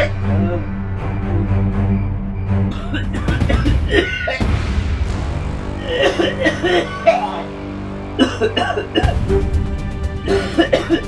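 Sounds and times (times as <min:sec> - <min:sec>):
background music with held tones: 0:00.0 - 0:11.0
man coughing: 0:02.7 - 0:04.4, 0:05.8 - 0:07.5, 0:08.2 - 0:09.2, 0:10.3 - 0:11.0.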